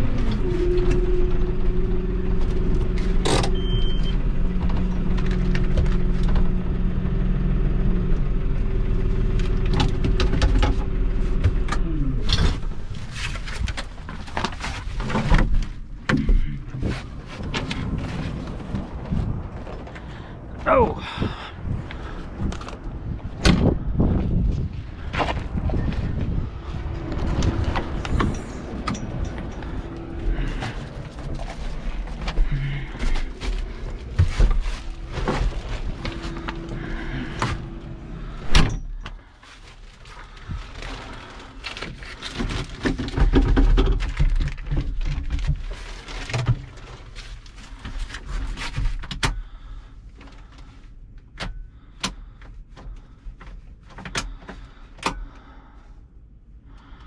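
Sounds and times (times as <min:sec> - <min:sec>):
wind rumble: 0:00.0 - 0:47.9
tractor cab door banging shut: 0:38.4 - 0:38.9.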